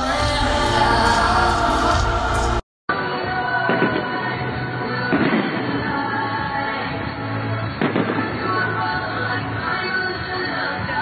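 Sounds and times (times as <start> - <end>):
music: 0.0 - 11.0
fireworks bangs: 5.1 - 6.1, 7.7 - 9.0.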